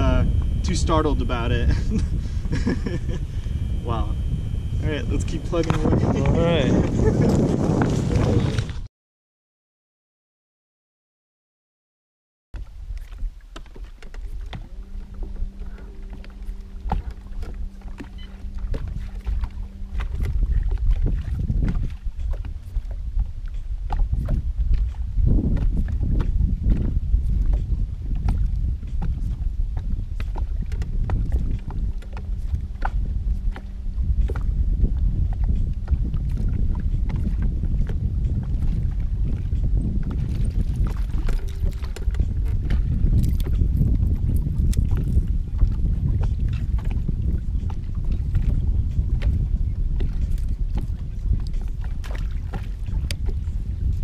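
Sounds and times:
steady low hum: 0:00.0 - 0:08.4, 0:12.6 - 0:54.0
small waves slapping boat hull: 0:00.0 - 0:08.9, 0:12.6 - 0:54.0
wind rumbling on microphone: 0:00.0 - 0:08.9, 0:12.6 - 0:54.0.

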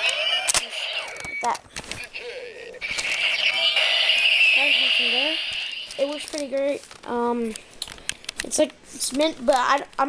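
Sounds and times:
toy electronic sound effect: 0:00.0 - 0:01.6, 0:02.8 - 0:06.4.

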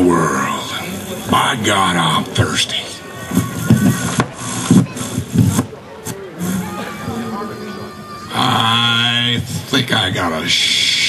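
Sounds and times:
man making wordless sounds: 0:08.3 - 0:11.0.

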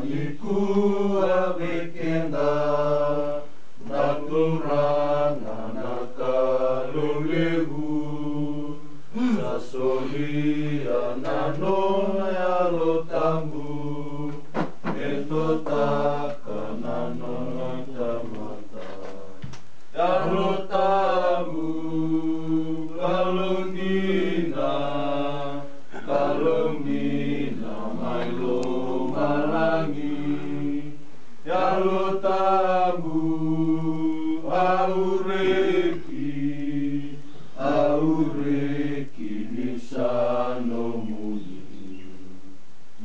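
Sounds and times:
men singing a hymn: 0:00.0 - 0:42.2.

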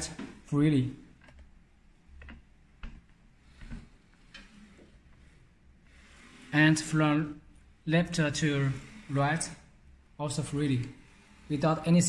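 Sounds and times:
printer carriage sliding on rail: 0:03.4 - 0:07.3, 0:08.0 - 0:09.6.

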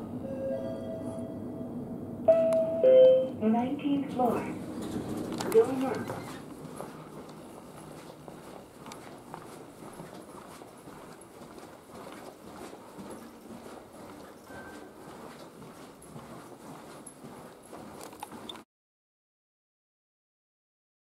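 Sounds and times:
low background noise: 0:00.0 - 0:18.6
footsteps on carpet: 0:05.4 - 0:18.6.

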